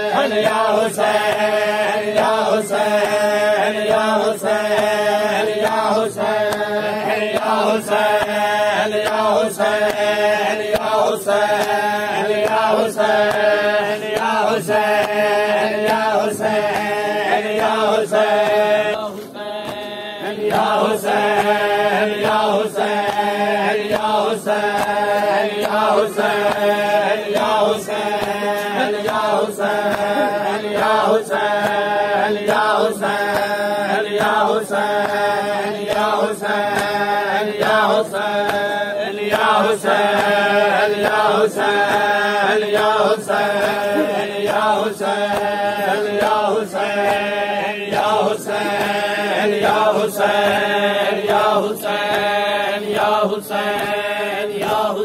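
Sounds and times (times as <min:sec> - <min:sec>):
crowd chanting: 0:00.0 - 0:55.0
person reciting over a microphone: 0:00.0 - 0:55.0
chest-beating slaps: 0:22.3 - 0:31.9, 0:35.9 - 0:46.4, 0:47.0 - 0:49.9.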